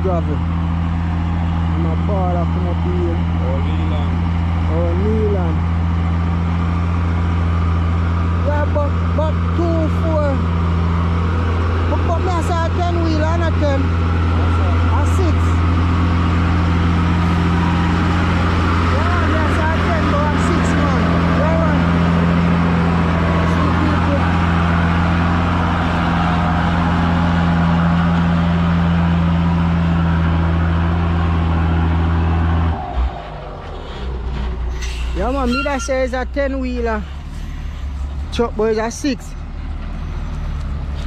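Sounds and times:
truck engine driving past: 0.0s - 41.0s.

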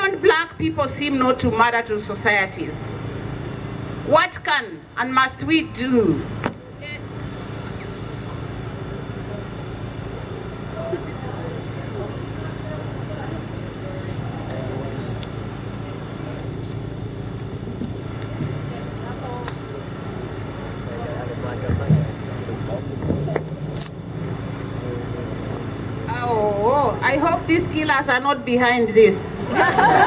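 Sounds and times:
road traffic hum: 0.0s - 30.0s
murmuring voices: 6.7s - 28.1s.

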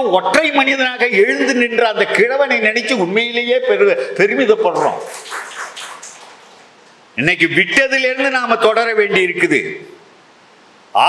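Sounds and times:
faint hissing room noise: 0.0s - 11.0s.

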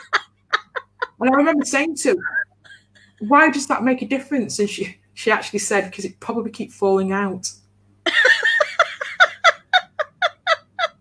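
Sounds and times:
woman laughing hard: 0.0s - 3.2s, 8.1s - 11.0s.

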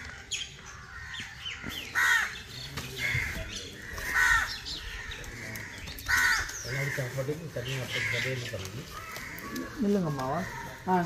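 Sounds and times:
crow cawing: 0.0s - 11.0s.

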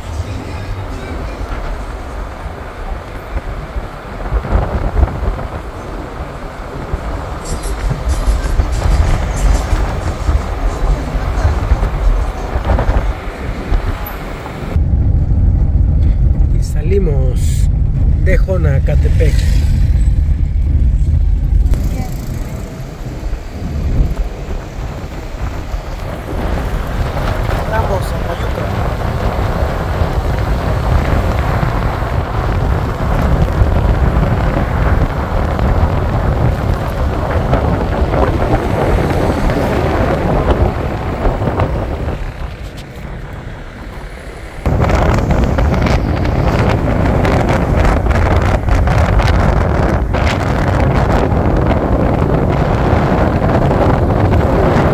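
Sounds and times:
vehicle road noise: 0.0s - 54.9s
wind buffeting microphone: 0.0s - 54.9s.

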